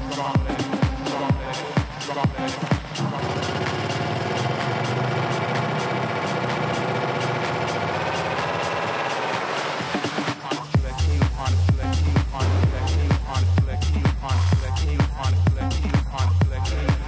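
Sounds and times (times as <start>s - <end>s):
kick drum: 0.0s - 3.0s, 10.8s - 17.0s
pulsing buzzing synthesizer: 3.0s - 10.1s.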